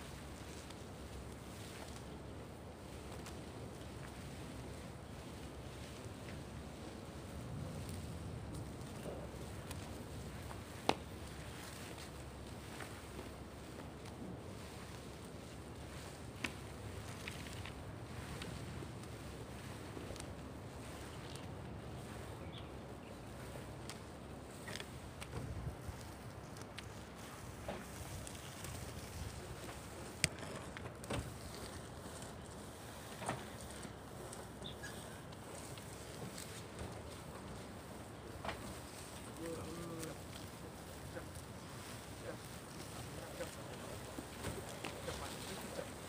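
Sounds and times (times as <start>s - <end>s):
low outdoor rumble: 0.0s - 46.0s.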